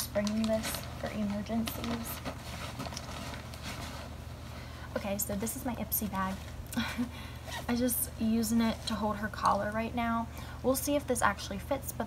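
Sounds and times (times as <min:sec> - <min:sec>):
items rustling and knocking: 0:00.0 - 0:04.6
low steady hum: 0:00.0 - 0:12.0.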